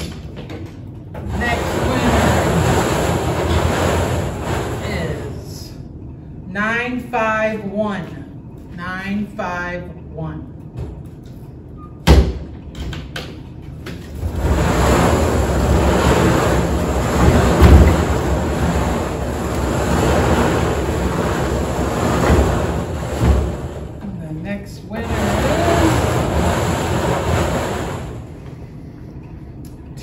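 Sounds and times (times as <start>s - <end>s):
tickets tumbling in raffle drum: 1.2s - 5.4s, 25.0s - 28.2s.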